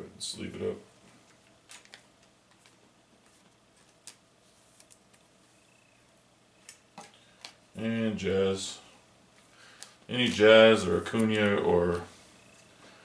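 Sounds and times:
plastic sleeve rustling: 0:01.1 - 0:05.5.

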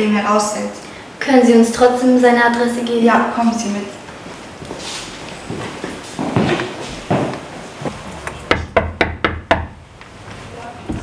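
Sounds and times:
knuckles knocking on door: 0:08.5 - 0:09.8.

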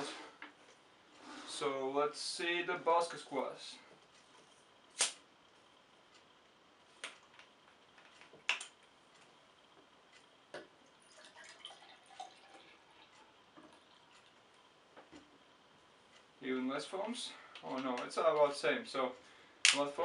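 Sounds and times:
drink pouring into a glass: 0:11.0 - 0:13.2.

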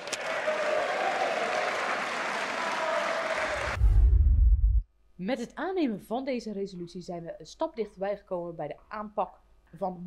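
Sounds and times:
crowd applauding: 0:00.0 - 0:03.8
deep low rumble: 0:03.7 - 0:04.8.

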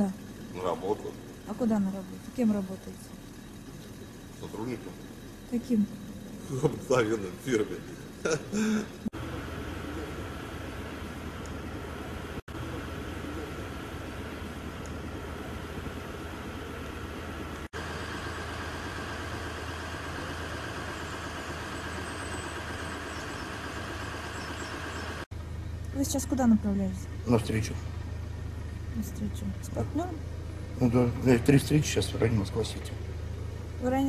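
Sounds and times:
car engine idling: 0:00.0 - 0:34.0
street noise: 0:00.0 - 0:34.0.

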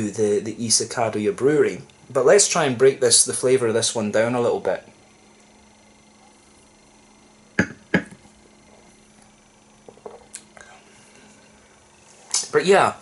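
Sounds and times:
faint steady hum: 0:00.0 - 0:13.0
glass set down on table: 0:09.9 - 0:10.2.

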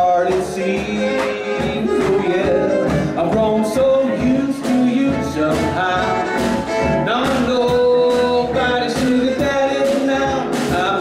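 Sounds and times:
man singing: 0:00.0 - 0:11.0
western swing band playing: 0:00.0 - 0:11.0.

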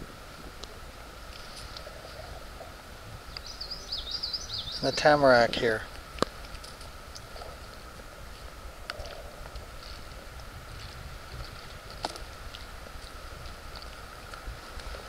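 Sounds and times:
low wind rumble on microphone: 0:00.0 - 0:15.0.

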